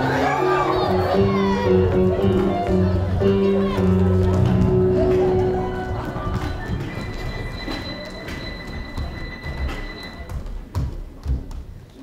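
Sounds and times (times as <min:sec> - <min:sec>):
running footsteps on wooden stage: 0:01.3 - 0:12.0.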